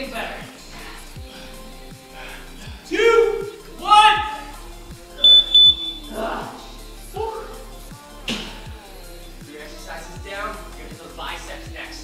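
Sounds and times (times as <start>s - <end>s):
background music with beat: 0.0s - 12.0s
person crying out: 2.9s - 4.5s
timer beeping: 5.2s - 6.1s.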